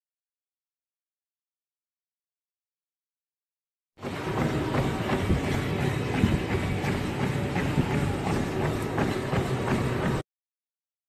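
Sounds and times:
treadmill belt and motor: 4.0 - 10.2.

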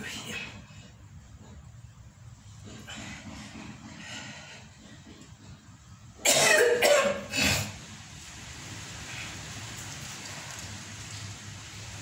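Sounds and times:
person coughing: 6.2 - 7.8.

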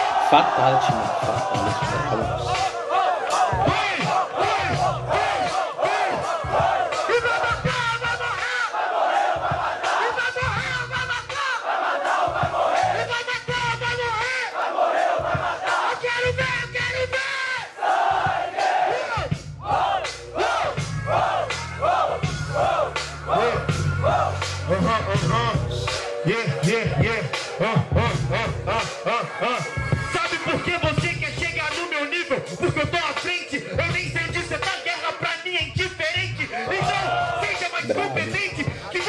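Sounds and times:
crowd shouting and cheering: 0.0 - 39.0
pulsing hip-hop beat: 0.0 - 39.0.

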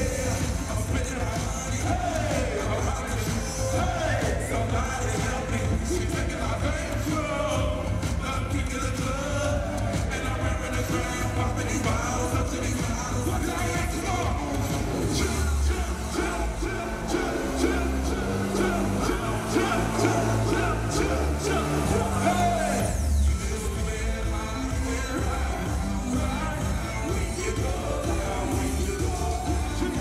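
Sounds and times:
rapping and singing over bass: 0.0 - 30.0.

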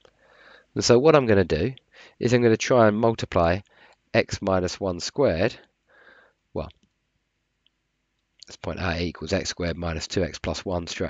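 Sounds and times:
soft breath: 0.1 - 0.8, 1.9 - 2.2, 3.6 - 4.1, 5.9 - 6.5.

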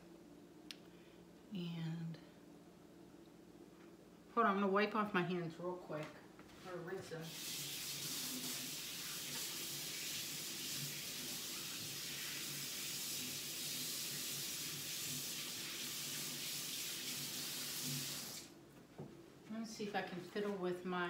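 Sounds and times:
water running from a faucet: 7.2 - 18.6.

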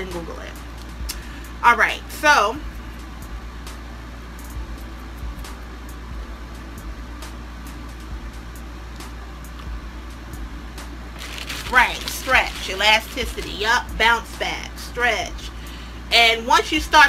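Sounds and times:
room noise hum and hiss: 0.0 - 17.0.

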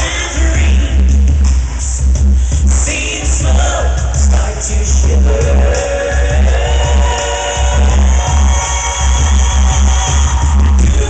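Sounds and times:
live band dance music: 0.0 - 11.0.

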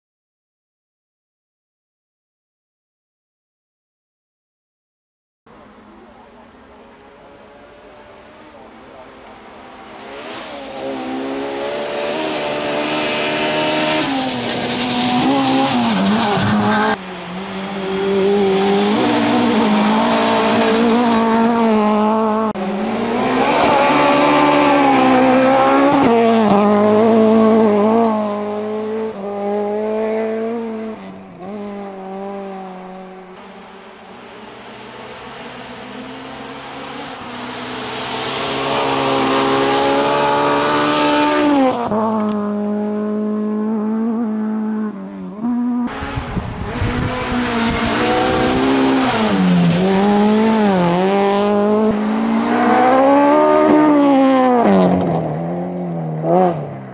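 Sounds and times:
rally car engine revving: 5.5 - 56.9.

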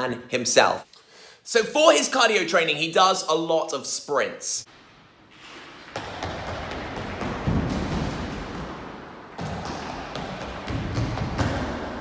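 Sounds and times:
running footsteps on hall floor: 5.3 - 12.0.

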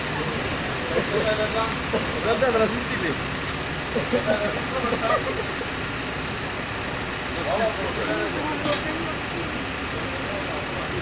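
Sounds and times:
faint voices talking: 0.0 - 11.0
high continuous whine: 0.0 - 11.0.

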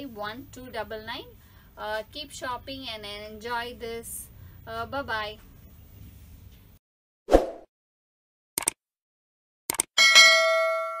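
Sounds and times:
quick clicks: 8.6 - 8.8, 9.7 - 9.9
bell ding: 10.0 - 11.0.

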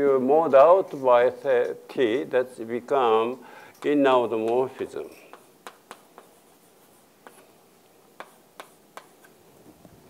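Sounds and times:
chalk tapping on board: 3.8 - 7.5, 8.2 - 9.4
chalk writing on chalkboard: 4.7 - 7.6, 8.2 - 9.4.

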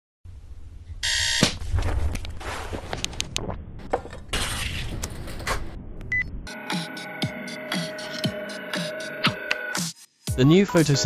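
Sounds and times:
electronic music with kick drum: 6.5 - 11.0.

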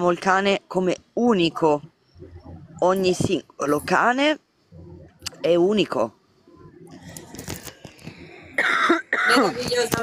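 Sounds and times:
woman coughing: 8.6 - 9.6.

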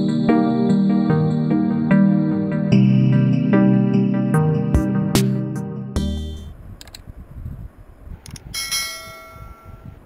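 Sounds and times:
bright bell ding: 8.6 - 9.8.

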